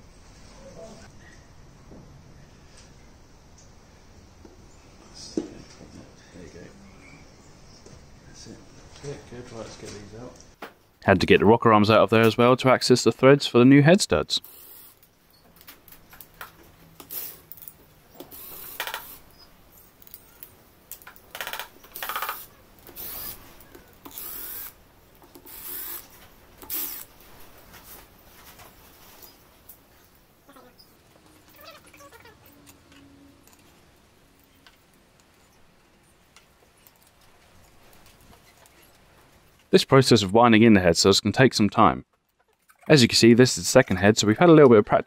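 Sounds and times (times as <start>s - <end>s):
cordless power driver bursts: 22.1s - 23.4s, 24.1s - 24.8s, 25.5s - 27.1s.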